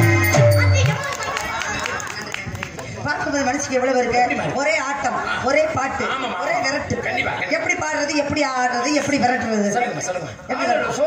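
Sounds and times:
faint overlapping voices: 0.0 - 11.0.

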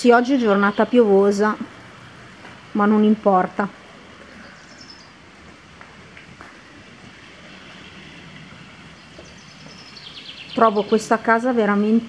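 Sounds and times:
steady rain falling: 0.0 - 12.0
faint bird chirp: 4.2 - 5.2, 7.5 - 12.0.

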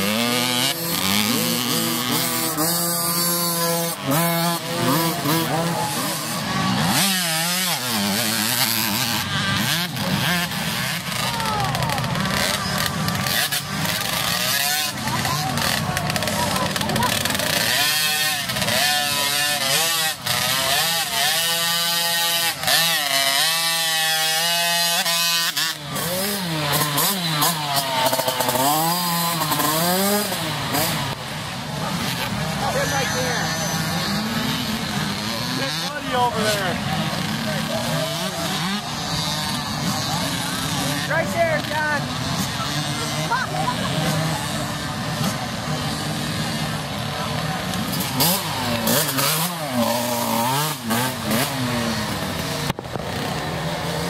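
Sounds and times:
voices: 0.0 - 52.7
dirt bike engines revving: 0.0 - 54.0.

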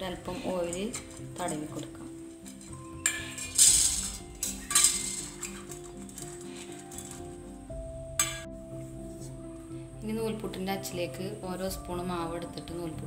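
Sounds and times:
background music: 0.0 - 13.0
metal plates clinking and scraping: 0.3 - 7.4.

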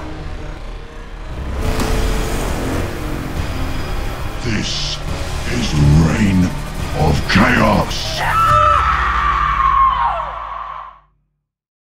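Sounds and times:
low musical drone: 0.0 - 9.7
long high-pitched scream: 8.2 - 11.1.

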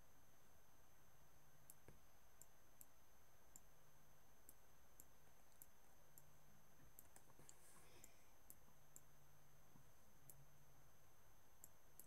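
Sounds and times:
faint low hum: 0.0 - 12.0
computer mouse clicks: 4.4 - 9.1.

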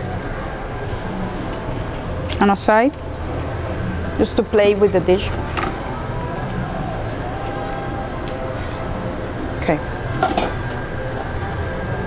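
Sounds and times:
steady background hum: 0.0 - 12.0
metal containers clinking: 10.2 - 10.7.

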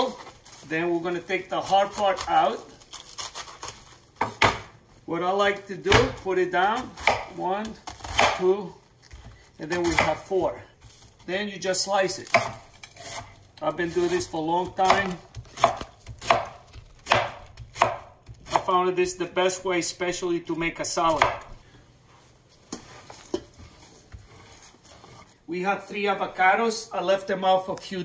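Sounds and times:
knife cutting cabbage: 1.4 - 4.1, 6.0 - 11.2, 12.0 - 18.8, 20.9 - 21.6
knife cutting cabbage on board: 12.2 - 18.8, 21.0 - 21.5.

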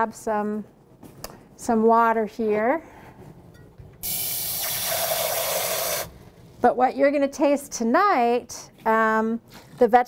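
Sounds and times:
faucet water filling cup: 4.0 - 6.1.

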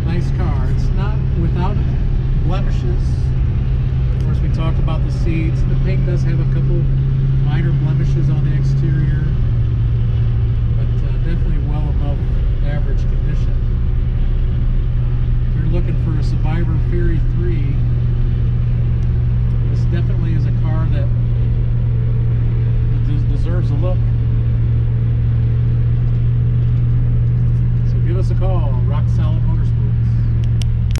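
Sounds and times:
car engine and road drone: 0.0 - 30.9.

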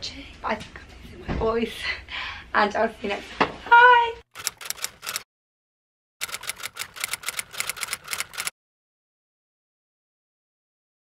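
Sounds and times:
typewriter key clicks: 4.4 - 5.2, 6.2 - 8.5.

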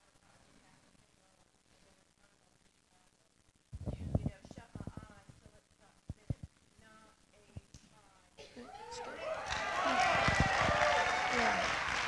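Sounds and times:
congregation cheering and clapping: 8.6 - 12.0.

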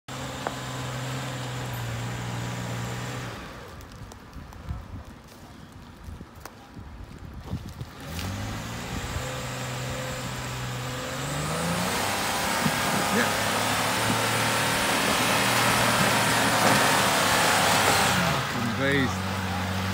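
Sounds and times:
vehicle engine revving: 0.1 - 4.0, 7.8 - 19.9.

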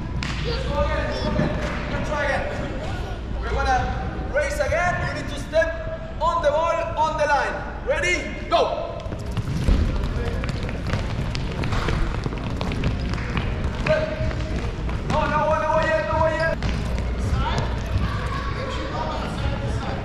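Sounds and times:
balls bouncing on gym floor: 0.0 - 2.3, 8.9 - 18.3.

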